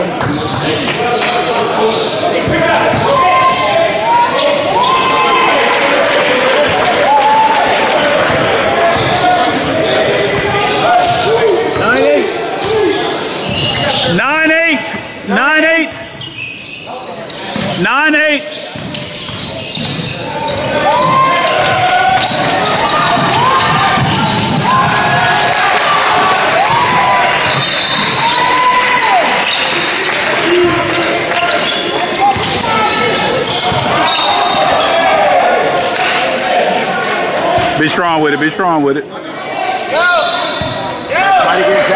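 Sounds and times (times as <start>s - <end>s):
players' voices: 0.0s - 41.9s.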